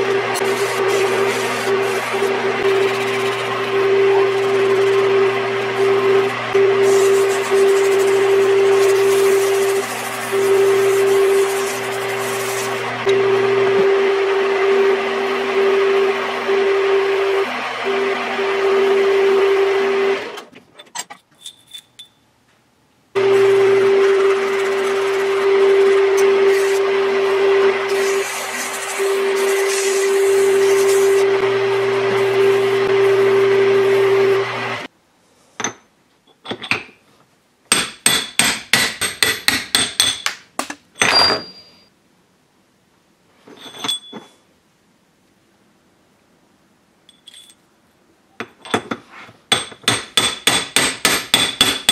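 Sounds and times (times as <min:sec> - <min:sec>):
metal lathe whining: 0:00.0 - 0:20.5, 0:23.2 - 0:34.9.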